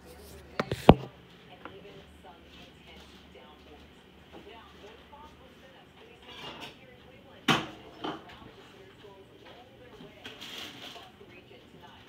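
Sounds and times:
faint background voices: 0.0s - 12.0s.

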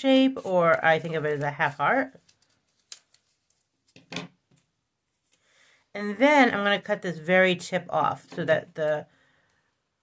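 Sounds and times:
scissors snipping paper: 0.0s - 3.2s.

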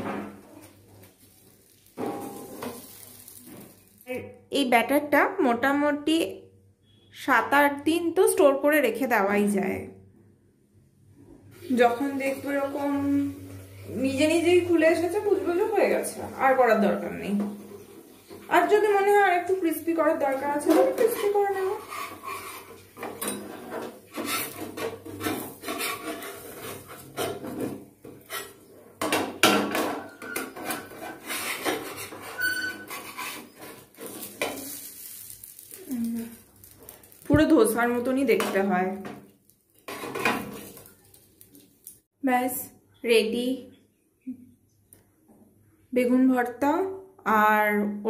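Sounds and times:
batter sizzling on a hot pan: 0.5s - 4.2s, 11.6s - 42.1s.

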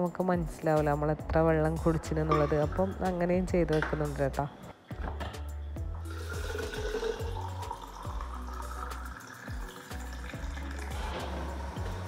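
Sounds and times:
background music: 0.0s - 12.0s
water filling plastic bottle: 6.1s - 12.0s.

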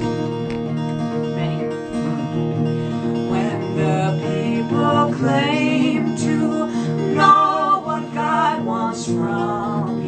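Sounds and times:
acoustic guitar strumming: 0.0s - 10.0s
man and woman singing: 3.2s - 10.0s.

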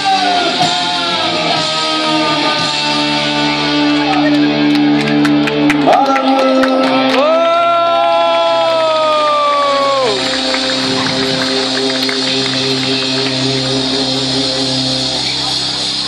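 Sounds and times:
crowd noise: 0.0s - 16.0s
rock band drums: 0.0s - 16.0s.

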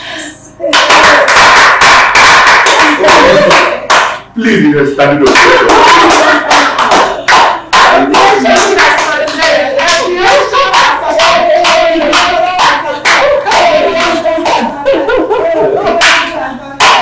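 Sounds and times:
group clapping rhythmically: 0.6s - 4.4s, 5.0s - 17.0s
people shouting and cheering: 2.7s - 3.9s, 5.2s - 16.2s.

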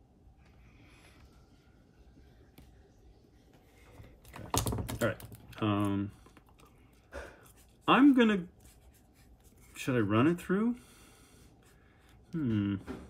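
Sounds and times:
person humming: 12.3s - 13.0s.

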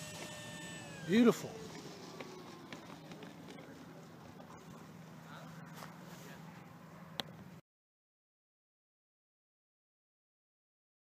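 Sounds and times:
electric motor whine spooling down: 0.0s - 4.1s
steady low hum: 0.0s - 7.6s.

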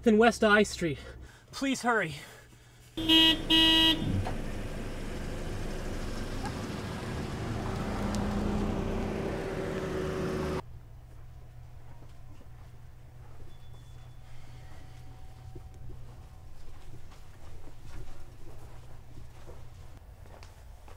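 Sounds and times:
loud pitched tone blasts: 3.0s - 6.4s
street and traffic noise: 3.0s - 13.5s.

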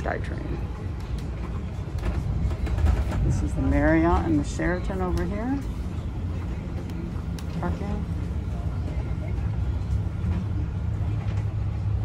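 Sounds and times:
bus engine hum: 0.0s - 12.0s
road noise: 0.0s - 12.0s.

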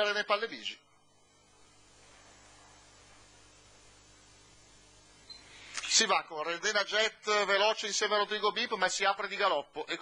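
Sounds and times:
man speaking: 0.0s - 0.8s, 5.8s - 10.0s
faint steady hiss: 0.0s - 10.0s.

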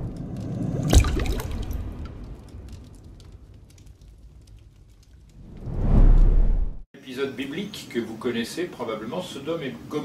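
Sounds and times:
low rumble: 0.0s - 6.8s.

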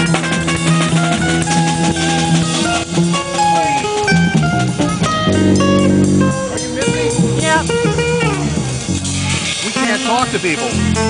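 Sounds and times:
electric guitar single-note line: 0.0s - 9.4s
jazz-funk trio playing: 0.0s - 11.0s.

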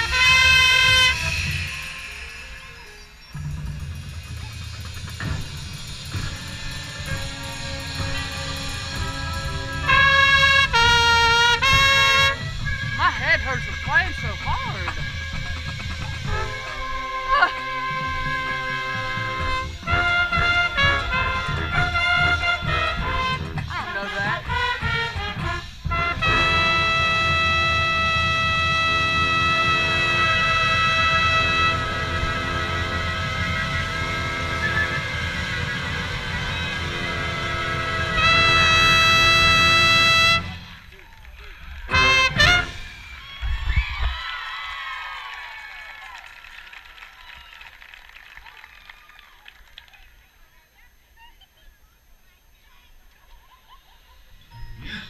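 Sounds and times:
trumpet: 0.0s - 3.2s, 5.2s - 40.9s, 41.9s - 43.1s
marching band brass and drums: 0.0s - 41.0s, 41.7s - 43.3s
crowd cheering: 28.9s - 50.3s.

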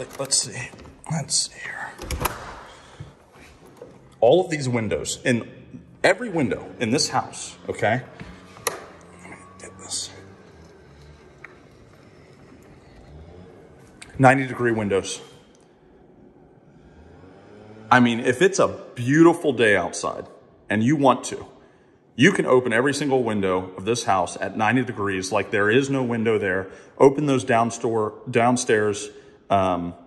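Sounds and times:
man's voice: 0.0s - 2.3s, 9.2s - 10.4s
faint background noise: 0.0s - 30.0s
low hum: 3.6s - 19.0s.

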